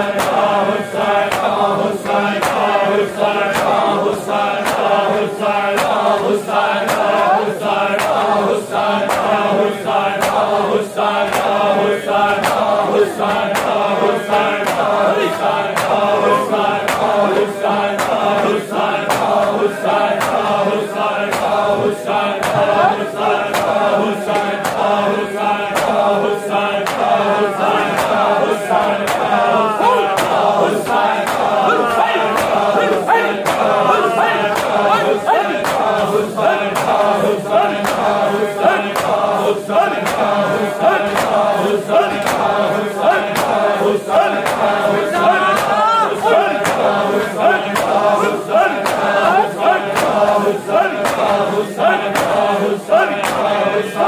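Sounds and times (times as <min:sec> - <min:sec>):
hands striking chests in beat: 0:00.0 - 0:54.0
men chanting: 0:00.0 - 0:54.0.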